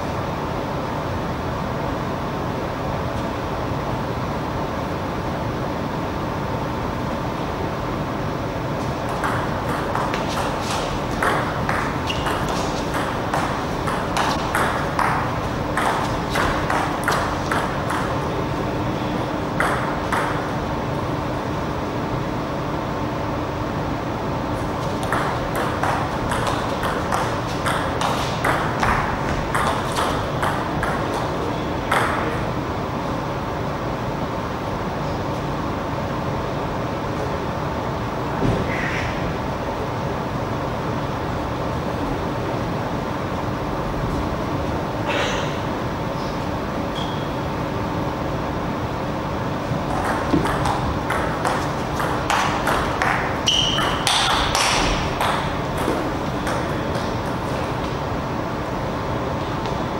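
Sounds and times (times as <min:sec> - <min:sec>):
steady background hum: 0:00.0 - 0:59.9.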